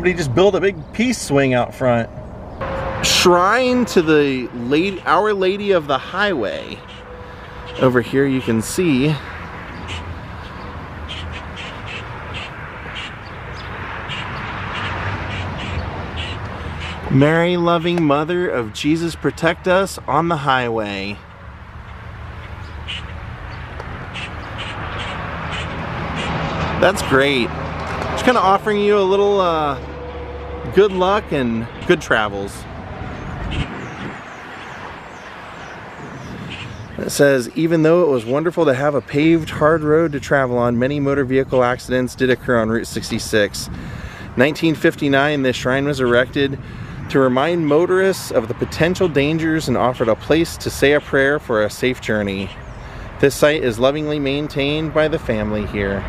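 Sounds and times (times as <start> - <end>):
outdoor background noise: 0.0 - 56.0
vehicle passing on highway: 0.0 - 56.0
birds giving short sharp calls: 6.8 - 7.8, 9.3 - 17.1, 21.8 - 26.4, 33.1 - 37.0.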